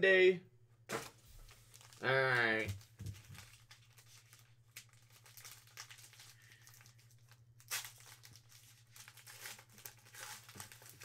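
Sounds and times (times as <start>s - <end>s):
foil wrapper crinkling: 1.0s - 11.0s.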